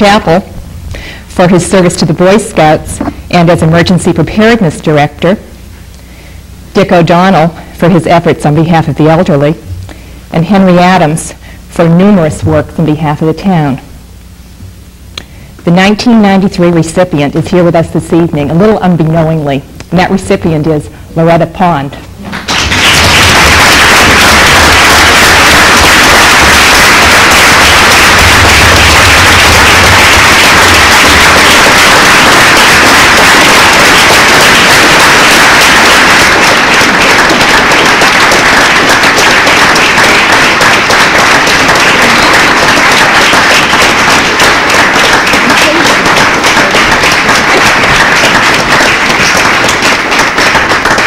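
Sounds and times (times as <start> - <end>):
audience applauding: 22.2 - 51.0.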